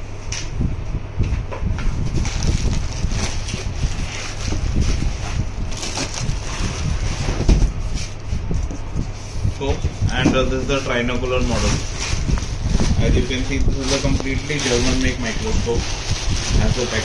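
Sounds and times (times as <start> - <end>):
plastic bags crinkling: 2.0 - 7.3, 10.7 - 17.0
foam packing rubbing: 2.0 - 17.0.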